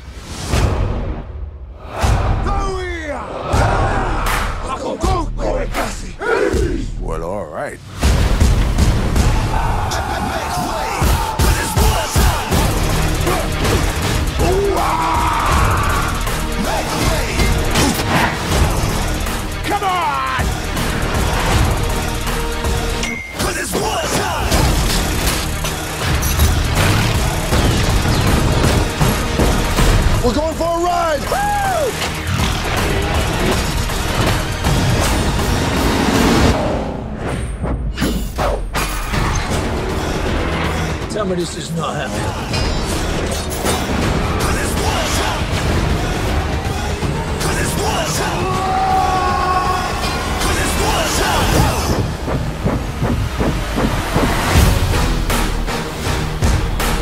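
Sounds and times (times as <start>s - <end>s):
film music score: 0.0s - 57.0s
people shouting: 1.8s - 6.9s, 9.1s - 21.5s, 30.3s - 34.1s, 43.9s - 52.4s
sound effects: 49.6s - 57.0s
hard percussive hits: 50.0s - 57.0s.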